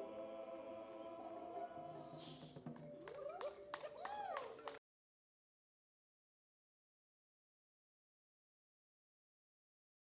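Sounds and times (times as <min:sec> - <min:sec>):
choir holding a chord: 0:00.0 - 0:02.4
voices whooping: 0:03.0 - 0:04.8.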